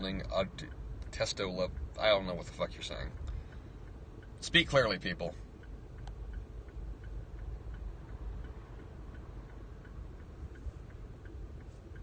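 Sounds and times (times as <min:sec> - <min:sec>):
car cabin rumble: 0:00.0 - 0:12.0
turn signal ticking: 0:00.0 - 0:12.0.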